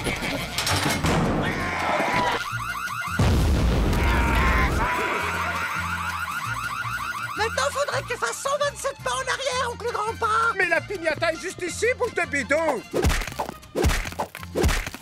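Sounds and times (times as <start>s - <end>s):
warbling alarm siren: 2.2s - 3.2s, 4.6s - 7.6s
cartoon music: 4.1s - 10.6s.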